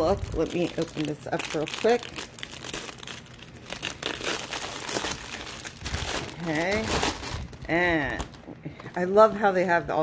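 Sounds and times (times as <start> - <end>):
plastic shrink-wrap crinkling and tearing: 0.0 - 8.4.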